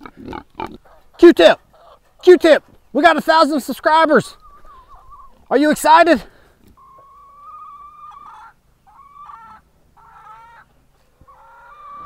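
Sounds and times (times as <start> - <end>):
hens calling: 0.0 - 12.0.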